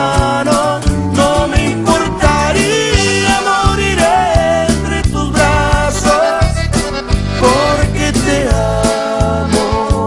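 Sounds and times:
bass line: 0:00.0 - 0:10.0
drum beat: 0:00.2 - 0:08.9
button accordion melody: 0:01.2 - 0:10.0.

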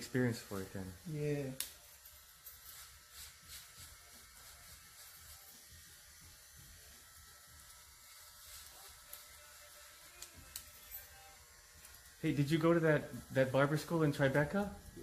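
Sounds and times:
scissors snipping hair: 0:00.9 - 0:12.3.

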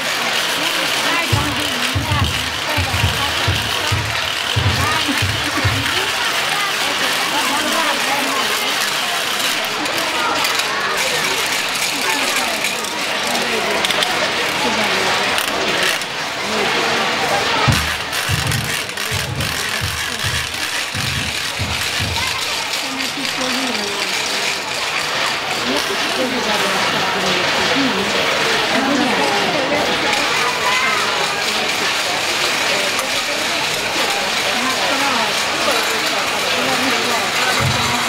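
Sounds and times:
faint murmur of voices: 0:00.0 - 0:38.0
low irregular thumps: 0:01.1 - 0:06.2, 0:17.6 - 0:22.8, 0:37.4 - 0:38.0
low muffled drumbeats: 0:01.1 - 0:06.4, 0:17.5 - 0:22.8, 0:36.6 - 0:38.0.

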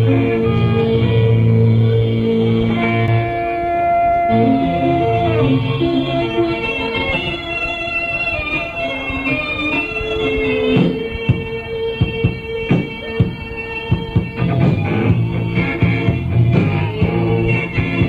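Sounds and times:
electric guitar ringing chords: 0:00.0 - 0:18.0
drum hits: 0:10.8 - 0:16.8.

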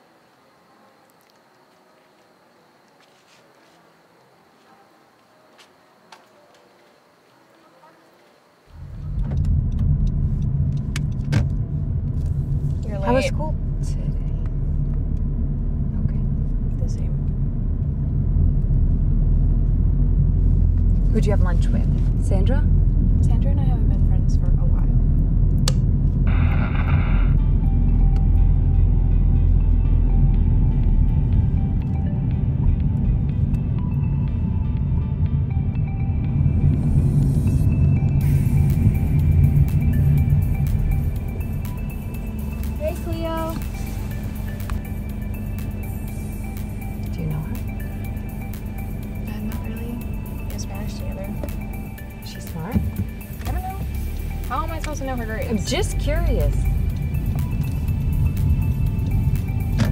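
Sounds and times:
quiet music: 0:00.0 - 0:59.9
car cabin road and engine rumble: 0:08.7 - 0:59.9.

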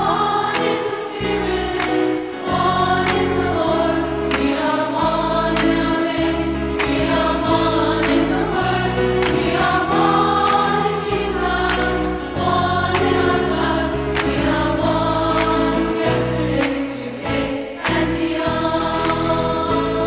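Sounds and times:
choir singing sacred music: 0:00.0 - 0:20.0.

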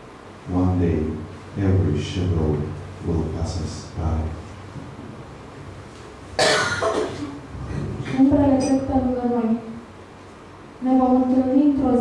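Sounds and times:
person coughing: 0:06.4 - 0:07.4.

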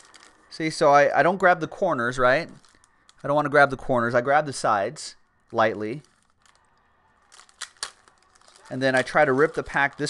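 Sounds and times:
wrapper crinkling and ripping: 0:00.0 - 0:00.8, 0:02.3 - 0:03.3, 0:05.4 - 0:10.0.

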